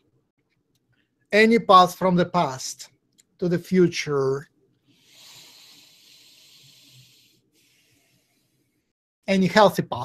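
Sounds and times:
faint hissy breath: 4.8s - 8.9s.

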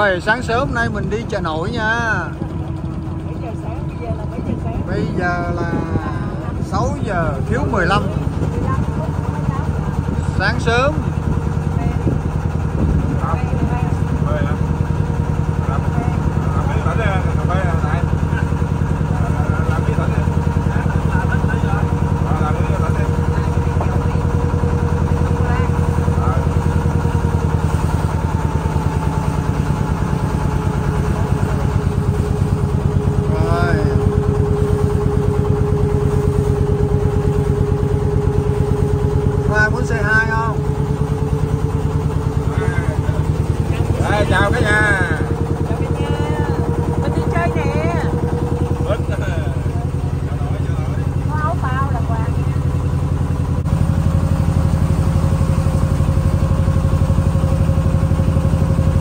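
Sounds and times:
boat engine running: 0.0s - 59.0s.

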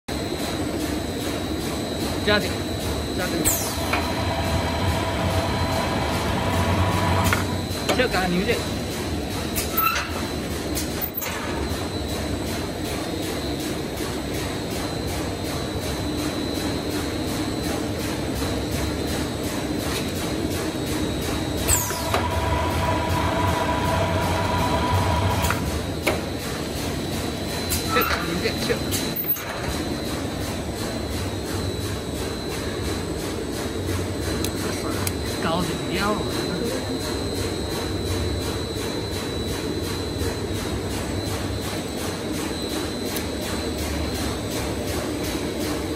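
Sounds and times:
paper tube winding machine running: 2.1s - 11.0s, 16.3s - 45.9s
machinery rumbling: 3.2s - 8.8s.

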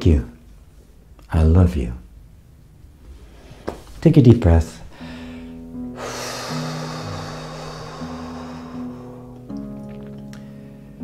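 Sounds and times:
person breathing deeply: 4.9s - 9.4s
soft background music: 4.9s - 11.0s.

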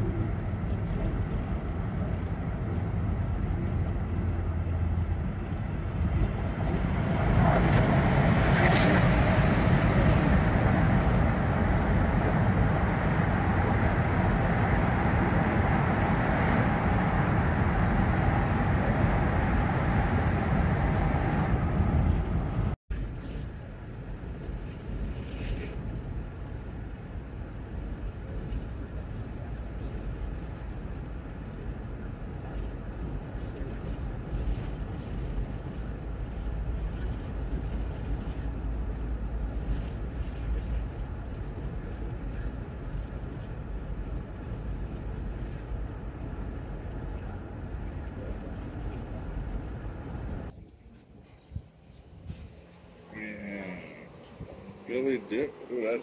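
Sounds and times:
van engine and tyre rumble: 0.0s - 56.0s.

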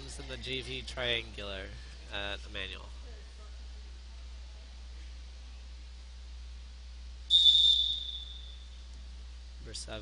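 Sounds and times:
referee's whistle blast: 7.3s - 8.8s.

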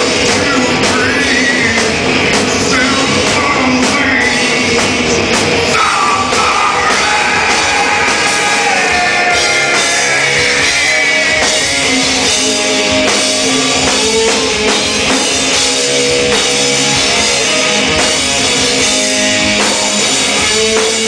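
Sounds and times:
rock band playing loud: 0.0s - 21.0s.

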